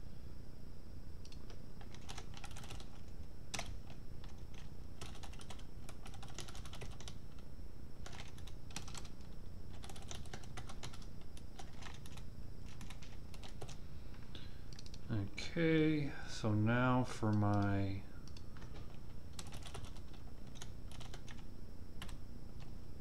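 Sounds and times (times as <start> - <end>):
typing on computer keyboard: 1.2 - 7.4, 8.0 - 13.8, 14.7 - 15.0, 17.5 - 22.7.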